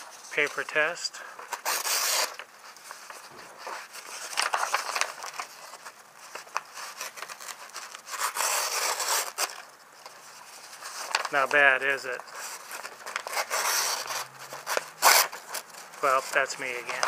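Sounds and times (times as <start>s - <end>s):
paper rustling: 0.0s - 17.0s
blade slicing paper: 1.5s - 2.4s, 6.8s - 9.6s, 12.3s - 17.0s.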